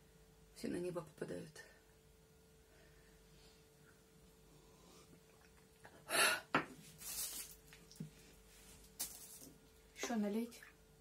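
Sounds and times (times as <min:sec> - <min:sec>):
woman gasping: 0:06.1 - 0:06.6.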